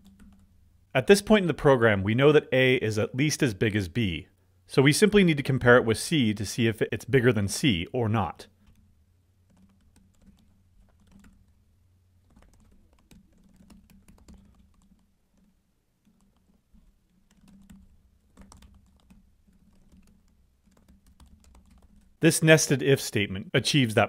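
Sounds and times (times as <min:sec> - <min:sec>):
faint keyboard typing: 0:00.0 - 0:01.4, 0:07.6 - 0:22.3.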